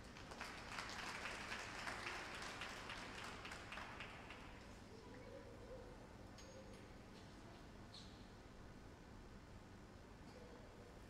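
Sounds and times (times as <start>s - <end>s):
faint audience applause: 0.0s - 4.7s.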